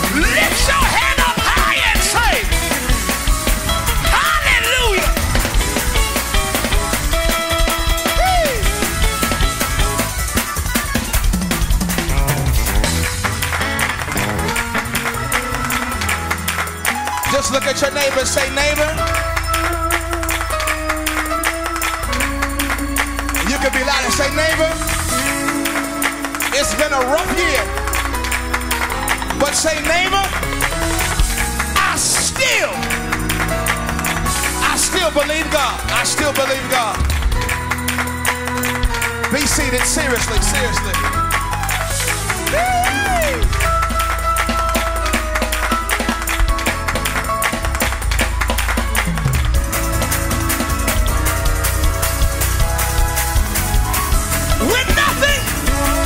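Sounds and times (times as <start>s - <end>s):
church band playing praise music: 0.0s - 56.0s
driving drum beat: 0.0s - 56.0s
heavy bass: 0.0s - 56.0s
keyboard notes: 0.0s - 56.0s
bass sliding down: 2.0s - 16.3s.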